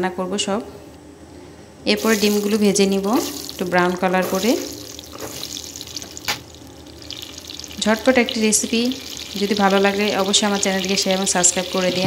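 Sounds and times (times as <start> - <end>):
hot oil sizzling in a pan: 2.0 - 12.0.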